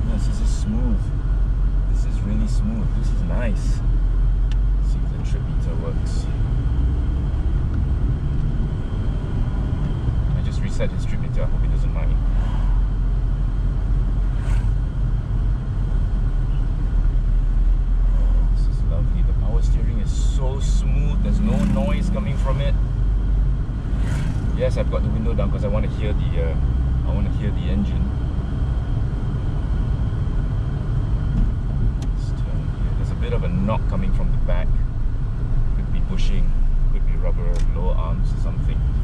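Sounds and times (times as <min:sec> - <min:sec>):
car cabin road and engine rumble: 0:00.0 - 0:39.0.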